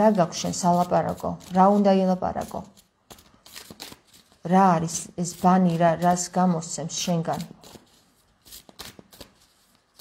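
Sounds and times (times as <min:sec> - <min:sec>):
cards being shuffled: 0:00.7 - 0:04.6, 0:07.3 - 0:10.0.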